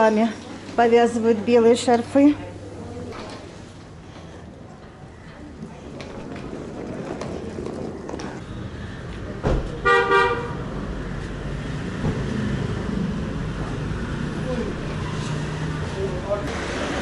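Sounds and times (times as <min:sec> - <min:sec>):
street traffic: 0:00.0 - 0:17.0
thump: 0:09.4 - 0:09.8
vehicle horn toot: 0:09.8 - 0:10.6.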